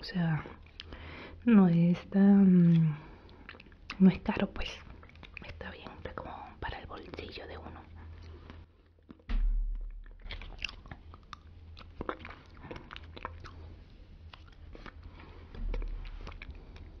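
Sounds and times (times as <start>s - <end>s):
low thud: 9.3s - 10.8s, 15.5s - 16.4s
wet mouth licking sounds: 10.0s - 17.0s.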